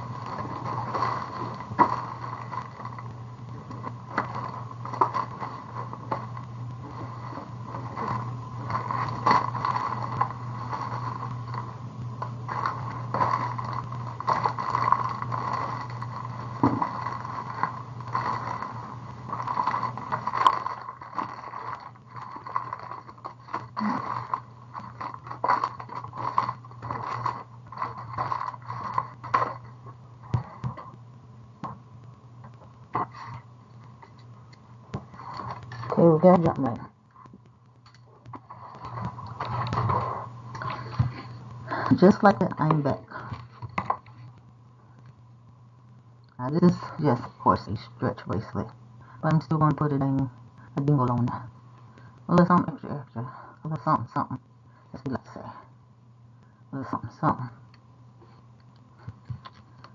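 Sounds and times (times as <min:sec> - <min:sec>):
objects being handled: 0:00.0 - 0:31.0, 0:32.5 - 0:44.4
steady low hum: 0:00.0 - 0:59.9.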